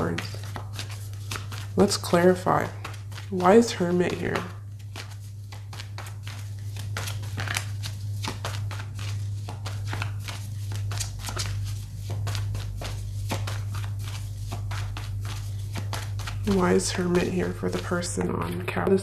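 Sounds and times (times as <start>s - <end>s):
cards being shuffled: 0.0s - 19.0s.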